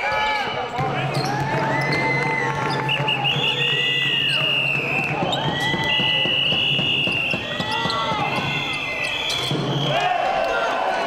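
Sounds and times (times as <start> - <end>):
sneakers squeaking on hardwood: 7.2 - 9.6.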